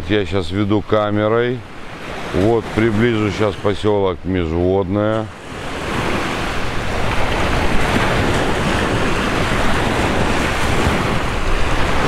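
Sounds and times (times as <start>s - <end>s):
waves washing onto beach: 0.0s - 12.0s
wind buffeting microphone: 0.0s - 12.0s.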